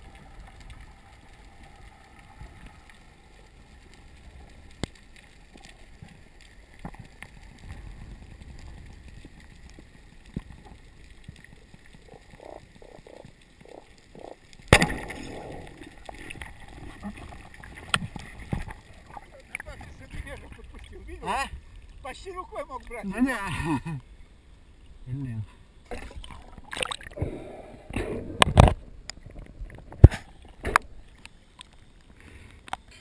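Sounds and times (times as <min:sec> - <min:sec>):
faint low underwater rumble: 0:00.0 - 0:33.0.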